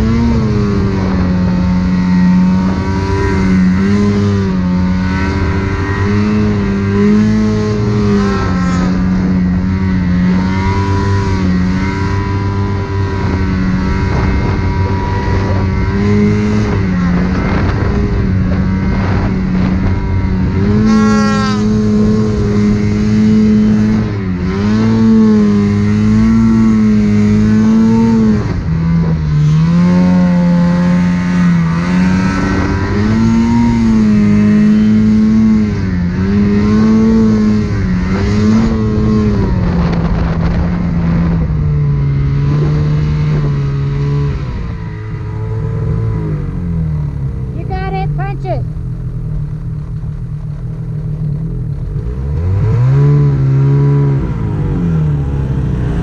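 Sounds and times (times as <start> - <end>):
snowmobile engine revving: 0.0 - 56.0.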